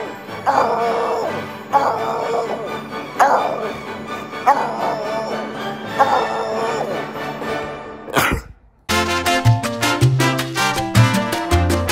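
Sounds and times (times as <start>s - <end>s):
background music: 0.0s - 11.9s
dog barking: 0.4s - 7.1s.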